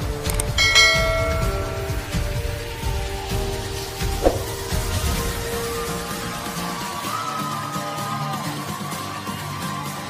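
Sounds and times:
background music with a beat: 0.0 - 10.0
notification bell ding: 0.6 - 2.5.

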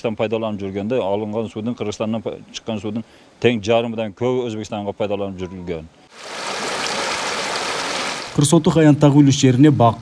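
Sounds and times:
water gushing into ditch: 6.1 - 8.4.

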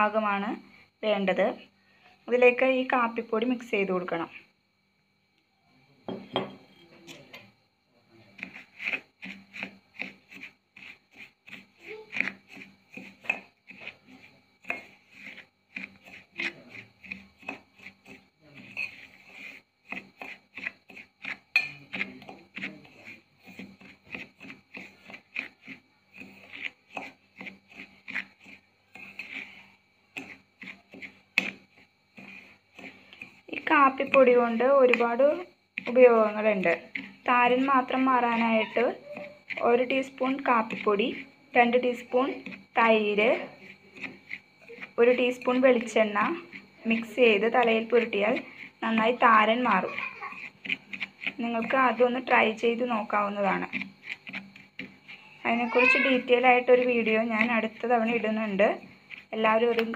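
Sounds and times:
metal spoon stirring in bowl: 8.3 - 59.9.

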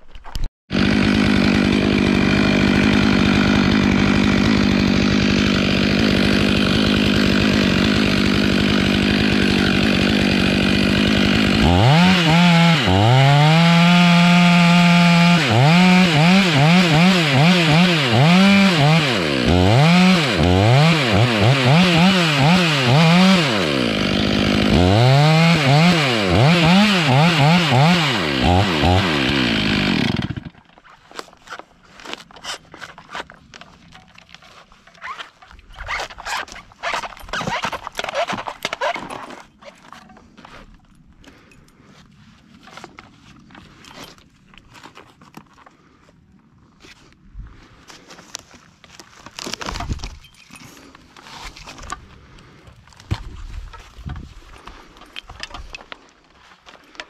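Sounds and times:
chainsaw cutting wood: 0.7 - 41.6, 49.3 - 56.0.

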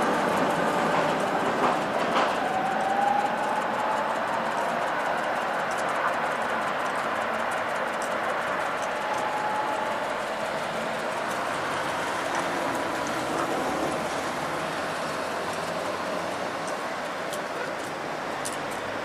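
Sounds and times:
tram running on track: 0.0 - 19.0
faint whine: 1.2 - 17.8.

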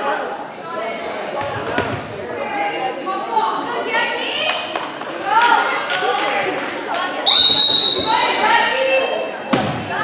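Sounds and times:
crowd chatter in echoing hall: 0.0 - 10.0.

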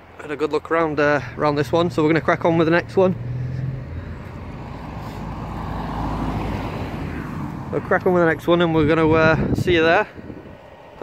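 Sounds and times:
vehicle passing by: 0.9 - 9.6.

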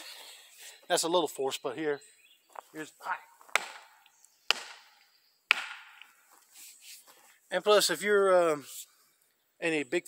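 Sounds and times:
walking stick knocking on tree: 3.4 - 3.9, 4.5 - 6.2.

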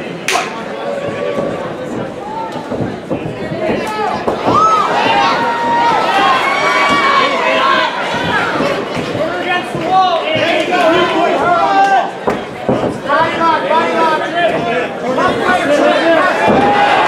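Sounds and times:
crowd shouting and cheering: 0.0 - 17.0
sharp crack: 0.2 - 0.7.

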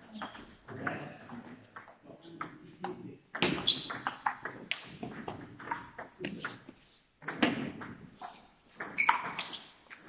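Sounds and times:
table tennis balls clicking: 0.1 - 10.0.

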